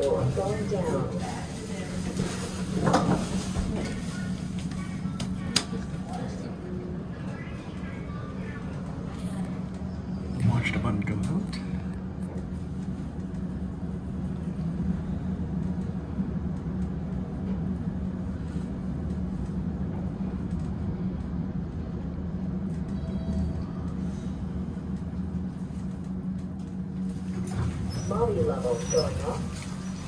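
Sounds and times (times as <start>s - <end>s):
elevator car rumbling: 0.0s - 30.0s.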